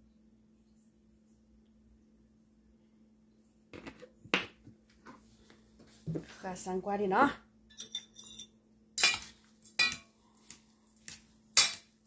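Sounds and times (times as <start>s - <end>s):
faint low hum: 0.0s - 12.0s
kitchen items being handled: 7.7s - 12.0s.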